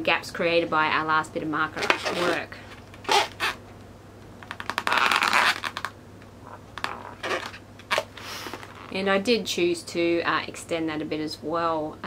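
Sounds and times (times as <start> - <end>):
marker rubbing on balloon: 3.0 - 3.6.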